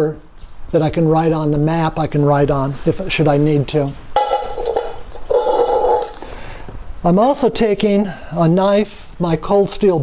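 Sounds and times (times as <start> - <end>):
metal can scraping on concrete: 4.2 - 6.5.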